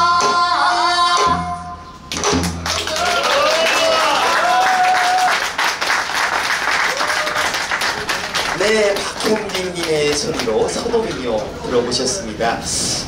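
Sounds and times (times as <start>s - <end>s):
audience applause: 2.6s - 11.3s.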